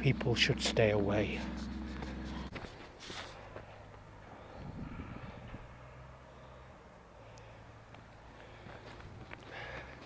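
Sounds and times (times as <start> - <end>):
footsteps on gravel path: 0.2 - 4.6, 7.9 - 10.0
shoe scuff: 1.4 - 3.6.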